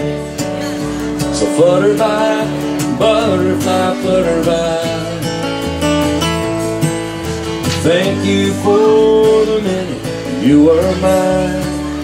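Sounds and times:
bass line: 0.0s - 12.0s
strummed acoustic guitar: 0.0s - 12.0s.

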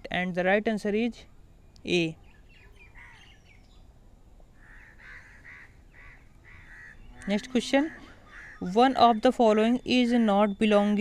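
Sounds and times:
faint bird calls: 2.2s - 10.7s.

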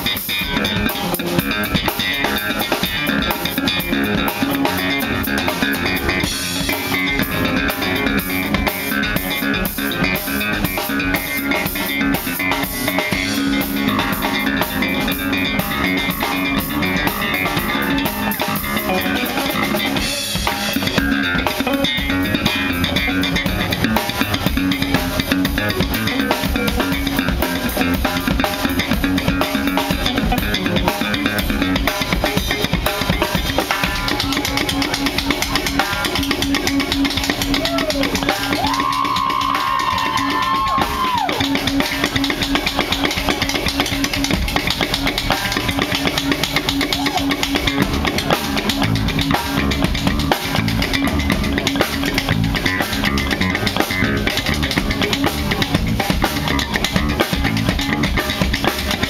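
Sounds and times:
drum kit rhythm: 0.0s - 59.0s
electric bass: 0.0s - 59.0s
electric guitar: 0.0s - 59.0s.

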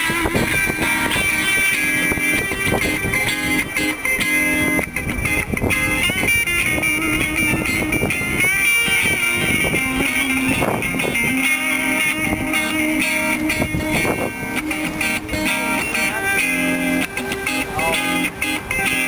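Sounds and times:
looped electric guitar groove: 0.0s - 19.0s.

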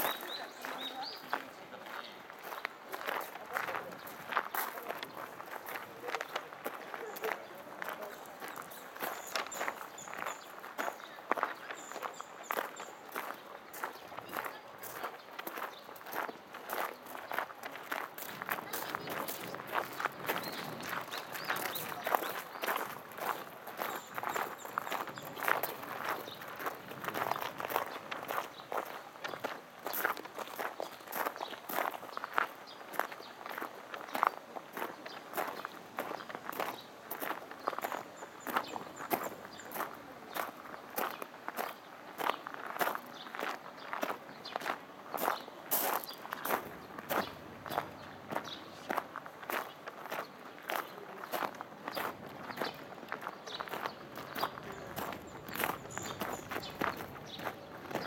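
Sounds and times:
footsteps on gravel: 0.0s - 58.0s.

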